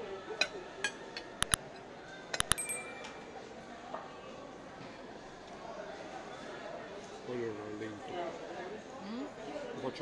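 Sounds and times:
forks clinking on ceramic plates: 0:02.4 - 0:03.5.

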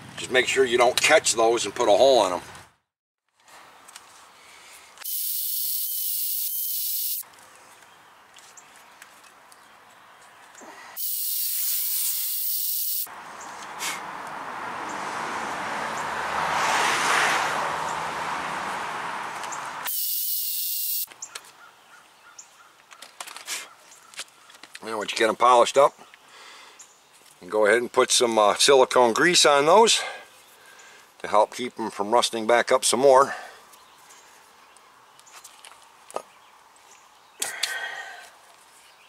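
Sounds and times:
abrasive polishing hiss: 0:05.0 - 0:07.2, 0:11.0 - 0:13.1, 0:19.9 - 0:21.1
cordless drill motor whine: 0:05.0 - 0:07.2, 0:19.9 - 0:21.1.

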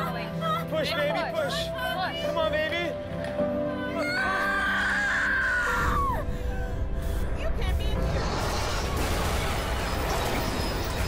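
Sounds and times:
background music tones: 0:00.0 - 0:11.0
woman screaming: 0:03.9 - 0:06.2.

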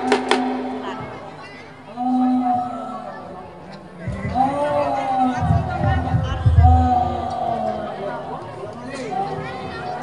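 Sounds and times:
crowd: 0:00.0 - 0:10.0
deep drum thumps: 0:05.4 - 0:07.4.

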